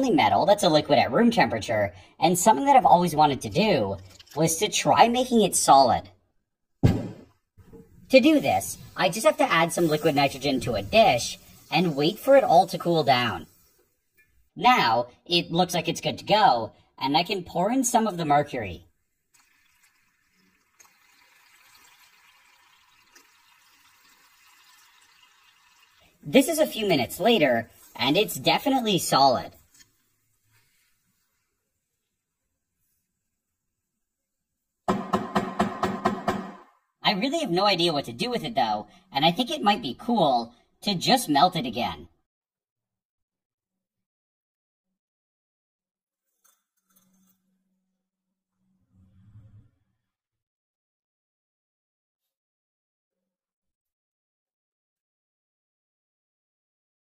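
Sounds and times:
faint hiss: 8.3s - 13.9s.

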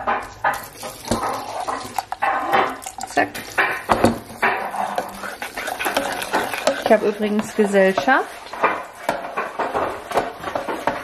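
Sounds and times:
spoon scraping and clinking pot: 0.2s - 11.0s
spoon stirring sauce in metal pot: 0.3s - 11.0s
woman speaking: 3.0s - 3.5s, 6.8s - 8.4s.

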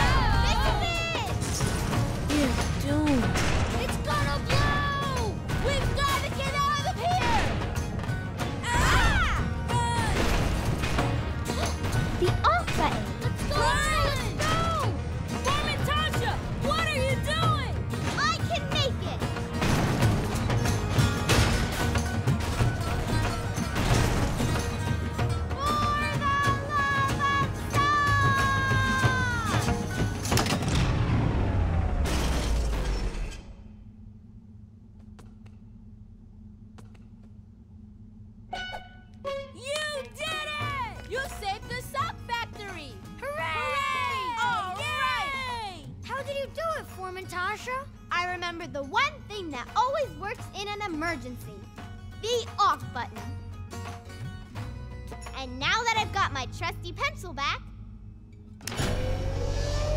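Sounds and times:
cartoon background music: 0.0s - 31.9s, 38.5s - 57.9s
machine crashes and clanks: 10.1s - 13.0s, 19.6s - 25.1s, 29.9s - 34.0s
low steady hum: 29.3s - 50.0s, 53.2s - 59.9s
wordless yelps: 43.2s - 45.8s
falling machine whine: 58.6s - 59.9s
descending pitched notes: 58.7s - 59.9s.

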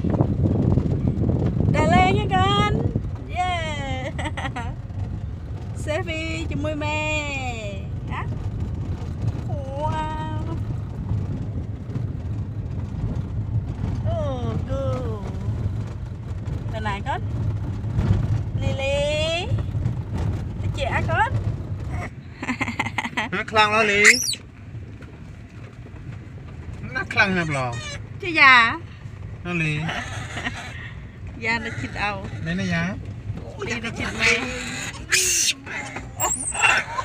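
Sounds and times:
car driving rumble inside cabin: 0.0s - 37.0s.

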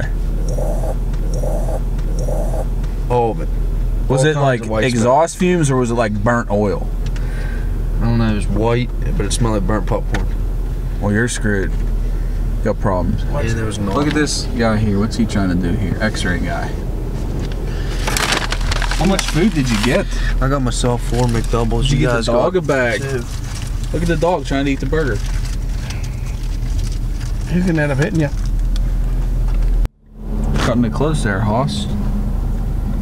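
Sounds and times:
paper bags rustling: 17.9s - 20.3s, 20.9s - 28.6s.

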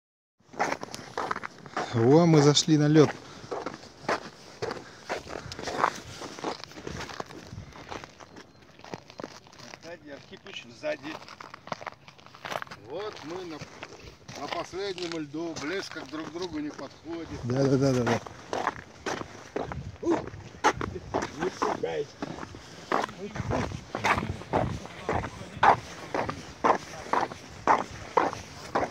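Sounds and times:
footsteps crunching on icy snow: 0.4s - 28.9s.

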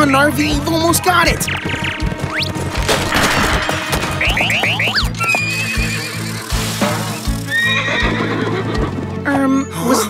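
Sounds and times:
upbeat background music: 0.0s - 10.0s
rising whistles: 4.1s - 6.6s
cartoon horse neighing: 4.9s - 6.4s, 7.5s - 8.9s.

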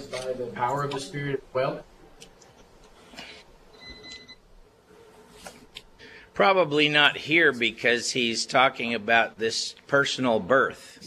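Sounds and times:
faint electronic beep: 3.7s - 4.5s.

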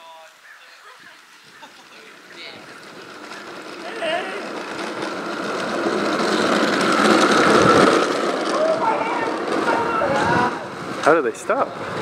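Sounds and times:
trike wheels grinding on asphalt: 0.8s - 12.0s.

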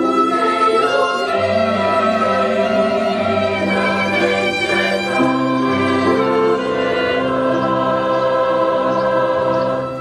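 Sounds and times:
mixed choir singing a hymn: 0.0s - 10.0s.

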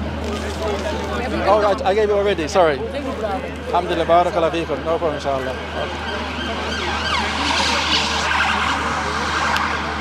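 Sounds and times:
emergency vehicle siren wailing: 4.5s - 10.0s.

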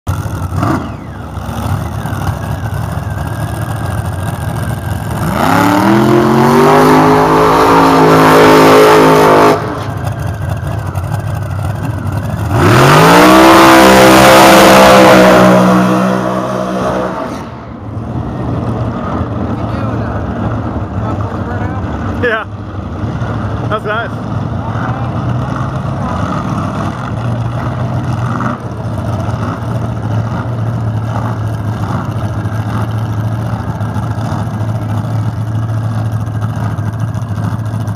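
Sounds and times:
dragster engine revving: 0.1s - 37.9s.

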